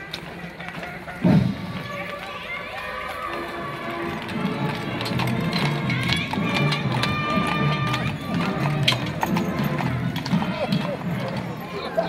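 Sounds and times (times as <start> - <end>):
crowd voices: 0.0 - 12.0
horse hooves clip-clopping: 0.0 - 12.0
music: 0.0 - 12.0.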